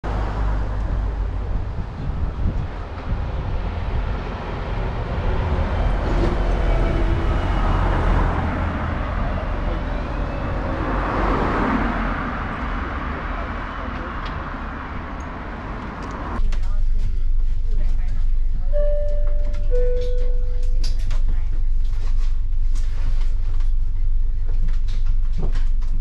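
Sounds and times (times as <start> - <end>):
car passing: 0.0 - 16.4
diesel bus passing: 0.0 - 25.7
street traffic: 0.0 - 26.0.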